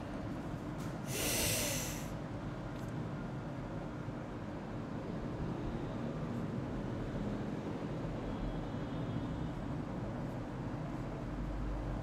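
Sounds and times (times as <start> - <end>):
person exhaling through nose: 1.1 - 2.2.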